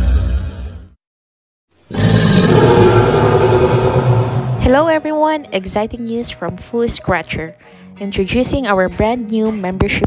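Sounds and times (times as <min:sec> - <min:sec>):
deep rumble: 0:02.0 - 0:05.1.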